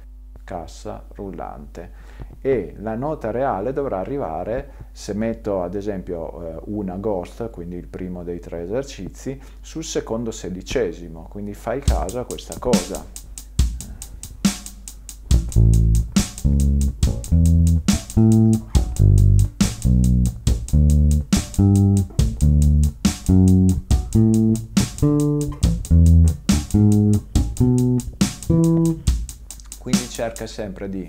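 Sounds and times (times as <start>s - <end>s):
drum backing track: 11.8s - 30.8s
ticking cymbal: 11.9s - 30.6s
bass guitar playing notes: 15.2s - 30.1s.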